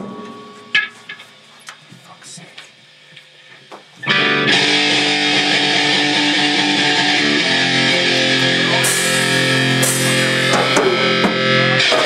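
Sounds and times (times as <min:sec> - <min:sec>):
electric guitar and bass ringing: 0:04.0 - 0:12.0
sharp guitar note: 0:04.0 - 0:12.0.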